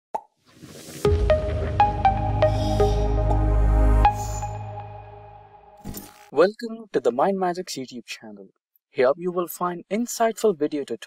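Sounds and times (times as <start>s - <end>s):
logo intro jingle: 0.8s - 5.8s.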